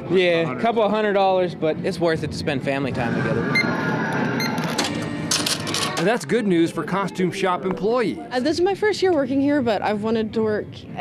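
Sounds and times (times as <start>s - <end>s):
cash drawer clinking and rattling: 4.8s - 6.2s.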